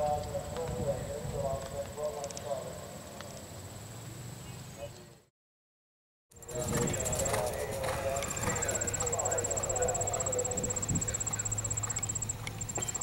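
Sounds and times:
horse hoofbeats on sand: 6.4s - 9.9s
high rapidly pulsing tone: 6.4s - 13.0s
indistinct background voices: 6.4s - 13.0s.

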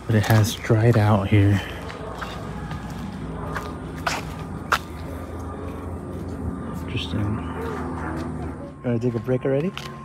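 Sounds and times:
footsteps through dry grass: 0.0s - 10.0s
low outdoor background: 0.0s - 10.0s.

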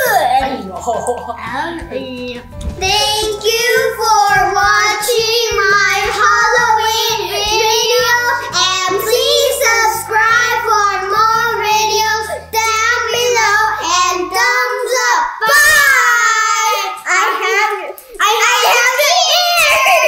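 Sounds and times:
backing music: 0.0s - 15.2s
child singing: 1.6s - 20.0s.

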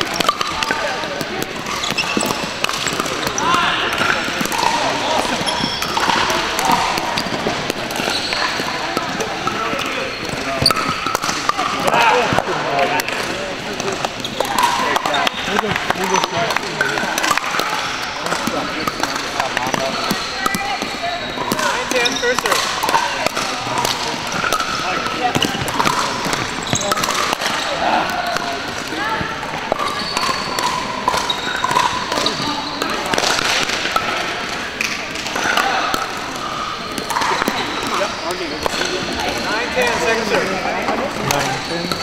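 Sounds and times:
balls bouncing on hardwood: 0.0s - 38.0s
many indistinct voices: 0.0s - 42.0s
paddles striking plastic balls: 0.0s - 42.0s.

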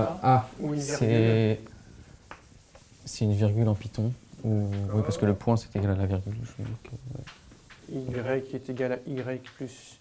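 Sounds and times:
chalk writing on blackboard: 0.0s - 10.0s.

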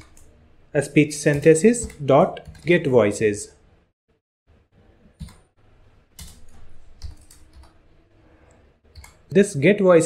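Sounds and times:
computer keyboard typing: 0.0s - 0.3s, 1.3s - 2.8s, 5.2s - 5.5s, 6.2s - 7.8s, 8.9s - 9.3s.

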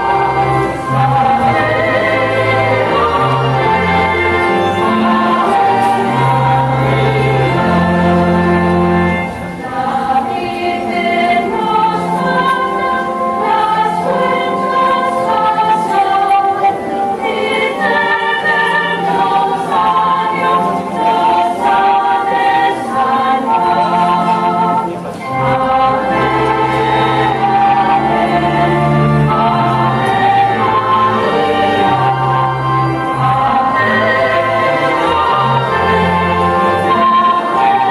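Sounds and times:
choir singing held notes: 0.0s - 37.9s.

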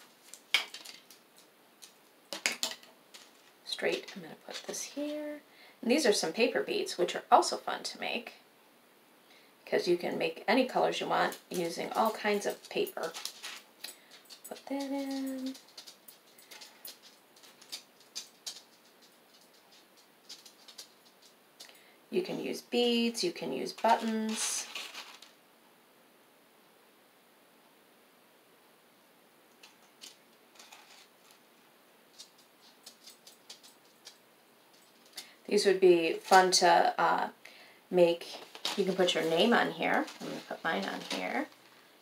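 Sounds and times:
small beads clicking and rattling: 0.3s - 5.2s, 11.3s - 21.7s, 23.7s - 25.4s, 29.6s - 31.4s, 32.1s - 35.3s.

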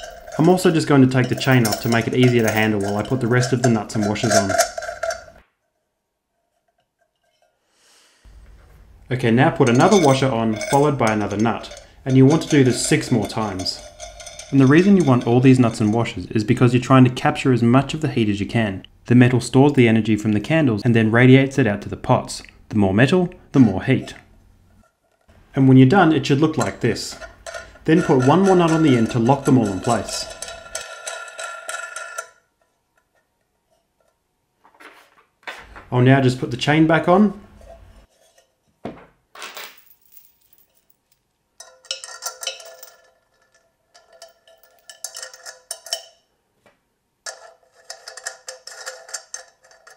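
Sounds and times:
nut spinning on threaded rod: 0.0s - 5.4s, 9.3s - 16.5s, 26.2s - 32.4s.

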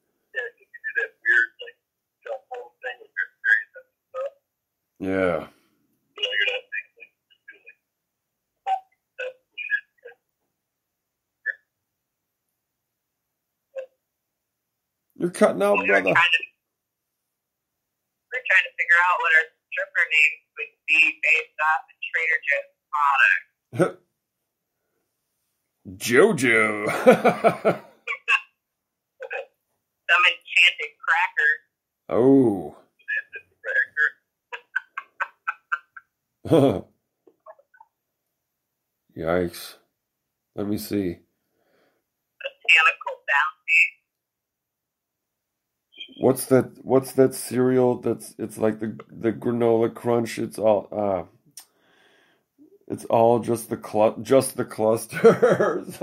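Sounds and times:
broken-up voice blips: 6.2s - 7.7s, 15.2s - 16.5s, 18.4s - 24.0s, 25.9s - 28.4s, 30.1s - 37.8s, 46.0s - 50.2s
person laughing in high-pitched bursts: 26.7s - 27.9s, 34.6s - 36.8s.

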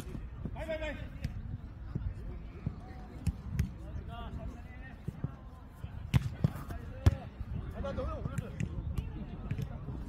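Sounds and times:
ball kicked and bouncing: 2.6s - 3.8s, 6.0s - 7.3s.

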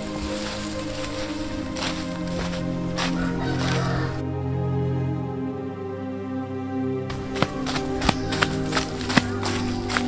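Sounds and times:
footsteps crunching on dry leaves: 0.0s - 4.2s, 7.1s - 10.0s
background music with held tones: 0.0s - 10.0s.

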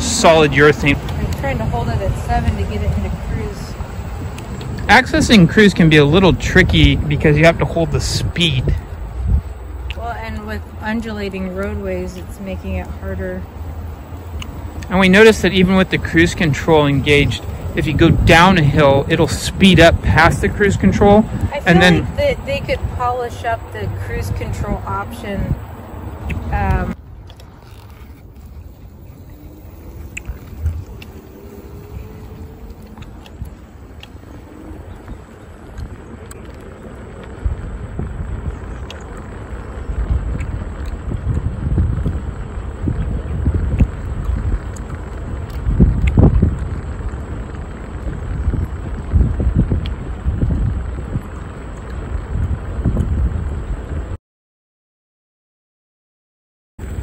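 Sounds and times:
low rumble in gusts: 0.0s - 54.2s
wind buffeting microphone: 0.0s - 54.2s.

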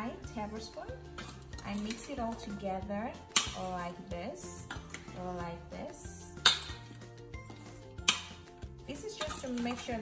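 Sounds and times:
background music: 0.0s - 10.0s
spoon clinking against metal bowl: 1.1s - 2.6s, 3.3s - 3.7s, 6.4s - 7.0s, 8.0s - 8.4s, 9.0s - 10.0s.

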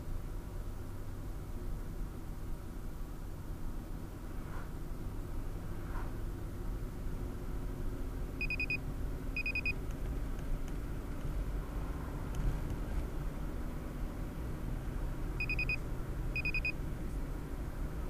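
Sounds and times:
car road and engine rumble: 0.0s - 18.0s
high electronic beep bursts: 8.4s - 8.8s, 9.4s - 9.8s, 15.4s - 15.8s, 16.4s - 16.8s.

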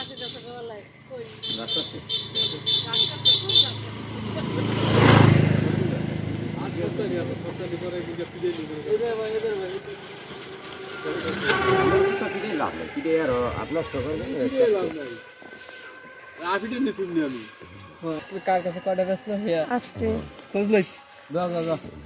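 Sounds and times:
vehicle passing by: 0.0s - 22.0s.

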